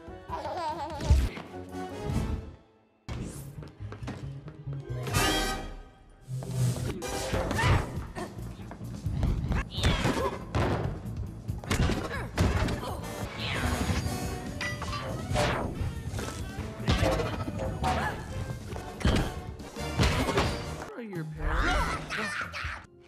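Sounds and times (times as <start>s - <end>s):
driving film score music: 0.0s - 23.0s.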